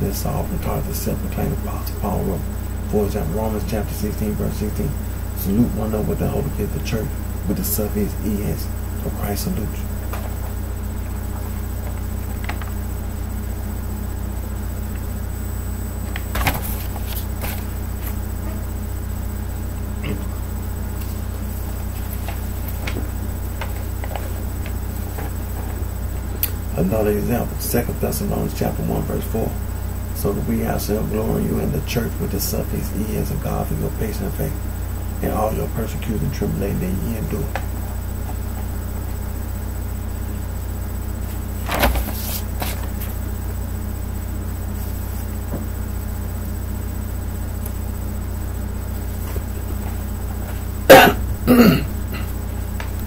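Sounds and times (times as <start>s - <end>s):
steady low hum: 0.0s - 53.0s
paper rustling and crackling: 16.1s - 18.2s, 21.0s - 25.8s, 41.3s - 43.2s.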